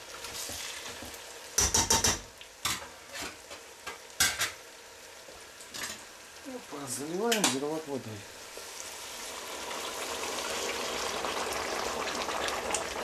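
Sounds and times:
meat and vegetables sizzling in pot: 0.0s - 13.0s
sharp knocks on pot: 1.6s - 2.3s.

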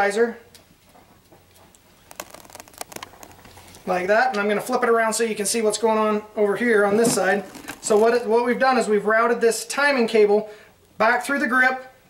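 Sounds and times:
small clicks and ticks: 1.5s - 3.8s.

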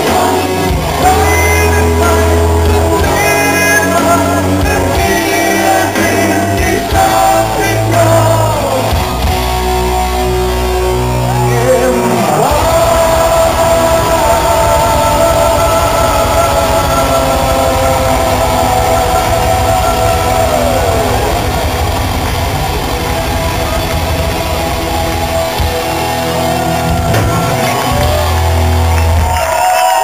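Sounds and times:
distorted electric guitars chord: 0.0s - 29.4s
drums: 0.0s - 30.0s.

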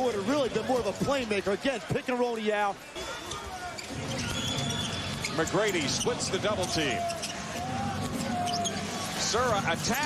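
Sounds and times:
arena crowd noise: 0.0s - 10.0s
sneaker squeak: 3.2s - 7.6s, 8.2s - 9.0s.

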